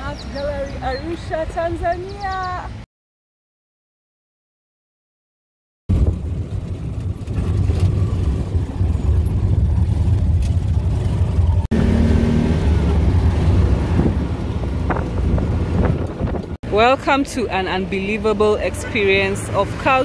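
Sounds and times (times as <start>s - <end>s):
road noise: 0.0s - 2.9s, 5.9s - 20.0s
auto rickshaw engine running: 5.9s - 20.0s.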